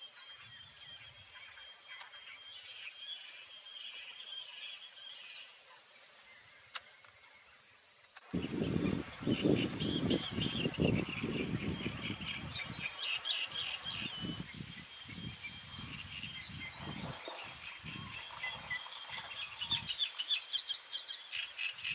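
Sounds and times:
small birds chirping and singing: 0:00.0 - 0:21.9.

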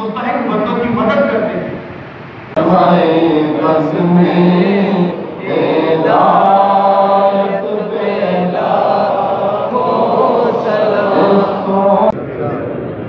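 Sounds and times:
murmur of voices: 0:02.5 - 0:13.0
man chanting: 0:02.6 - 0:12.8.

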